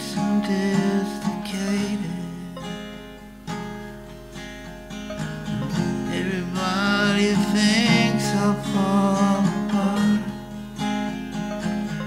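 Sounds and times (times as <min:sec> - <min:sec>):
long held notes: 0:00.0 - 0:10.5
acoustic guitar strumming: 0:00.0 - 0:12.0.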